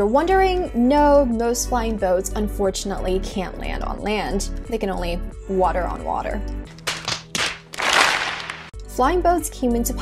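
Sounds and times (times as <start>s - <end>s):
sharp slaps: 6.7s - 8.7s.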